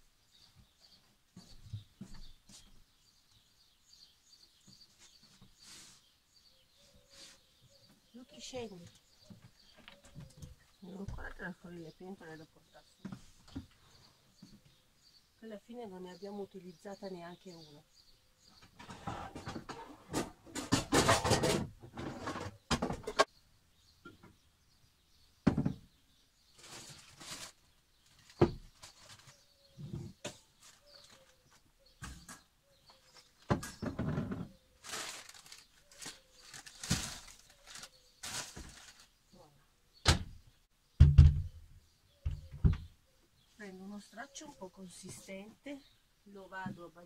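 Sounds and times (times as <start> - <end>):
cooking pots clattering: 18.8 - 23.3.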